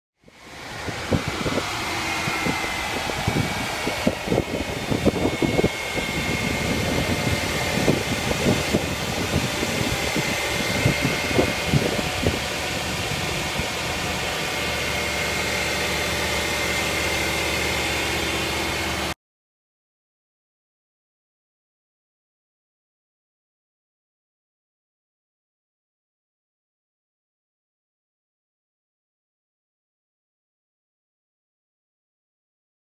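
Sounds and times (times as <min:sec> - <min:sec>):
thin steady whine: 0:00.3 - 0:19.1
van engine idling: 0:00.3 - 0:19.1.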